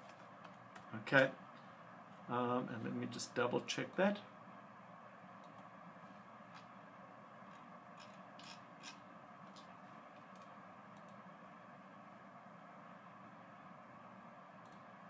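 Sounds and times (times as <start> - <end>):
faint room hum: 0.0 - 15.0
computer mouse clicks: 5.4 - 5.7, 14.6 - 14.9.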